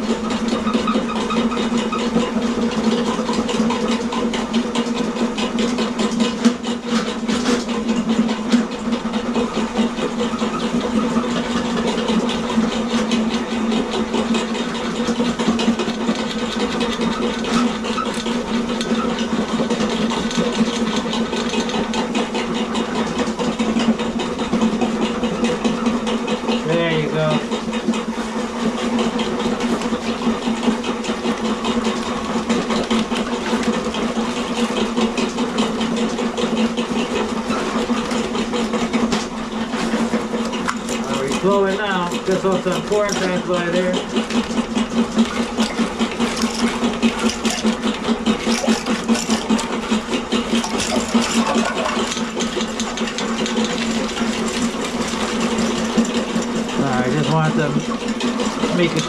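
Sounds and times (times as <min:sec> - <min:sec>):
drain-cleaning machine humming: 0:00.0 - 0:59.0.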